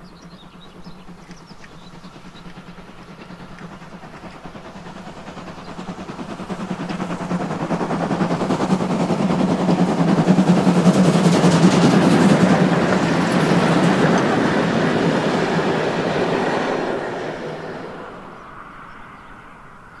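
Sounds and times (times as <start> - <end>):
steam train passing: 0.0 - 20.0.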